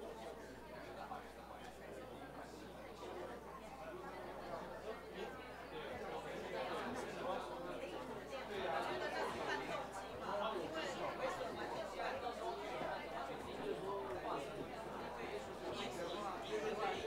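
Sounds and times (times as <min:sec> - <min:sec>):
group of people chattering: 0:00.0 - 0:17.0.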